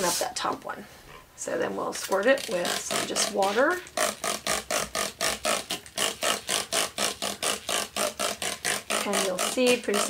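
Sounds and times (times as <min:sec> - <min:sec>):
spray bottle squirting water: 0:02.5 - 0:10.0.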